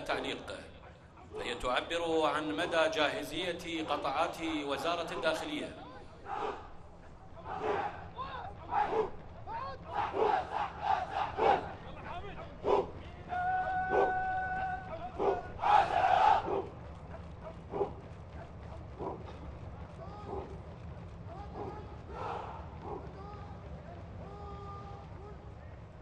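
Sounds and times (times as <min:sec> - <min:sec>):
troops shouting in unison: 0:06.2 - 0:06.8, 0:07.4 - 0:16.7, 0:21.4 - 0:23.4.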